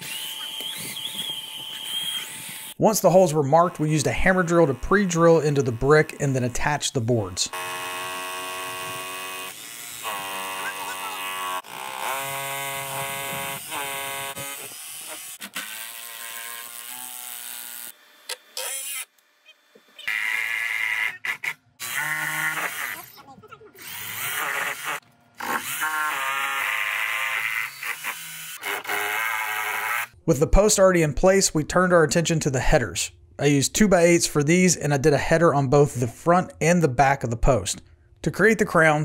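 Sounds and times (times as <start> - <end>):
power drill motors whining: 0.0 - 2.8, 7.5 - 23.2, 23.8 - 30.2
hammer drill boring into brick: 23.8 - 30.2.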